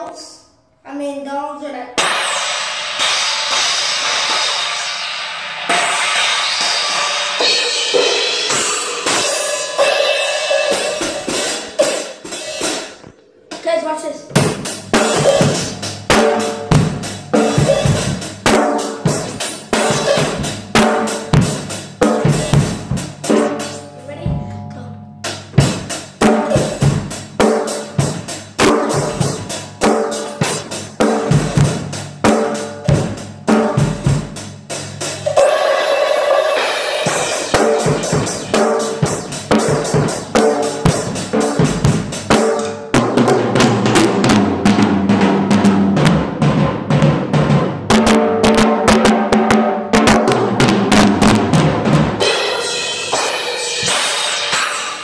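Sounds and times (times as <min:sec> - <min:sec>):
drum kit beat: 0:02.0 - 0:55.0
ringing cymbal wash: 0:52.3 - 0:55.0.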